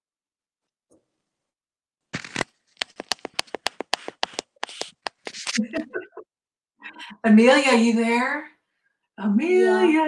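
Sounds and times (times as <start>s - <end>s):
sharp clicks and rustles: 2.1s - 5.8s
voice: 5.3s - 6.2s, 6.8s - 8.6s, 9.2s - 10.0s.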